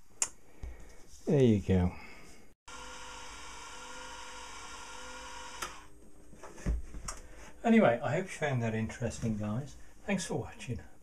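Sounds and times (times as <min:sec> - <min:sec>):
small electric motor whining: 0:02.7 - 0:05.9
motor cutoff click: 0:03.0 - 0:05.9.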